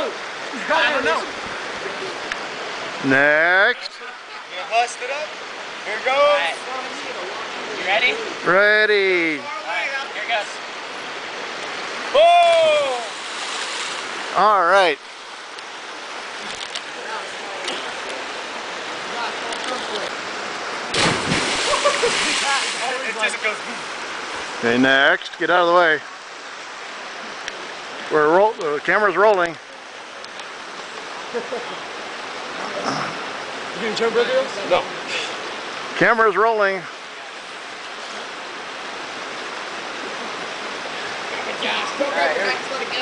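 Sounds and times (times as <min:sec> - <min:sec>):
flowing water rushing: 0:00.0 - 0:43.0
loud splash into water: 0:20.9 - 0:23.0.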